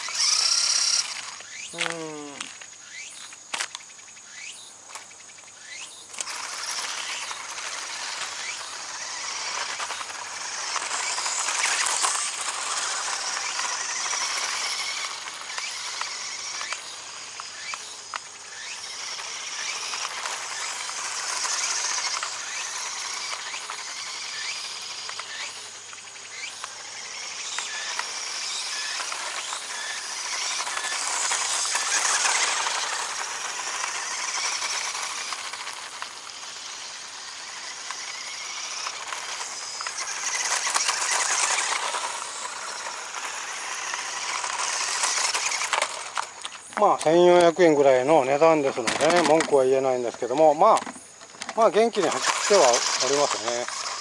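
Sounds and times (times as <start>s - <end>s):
electric motor and tyres hissing: 0.0s - 54.0s.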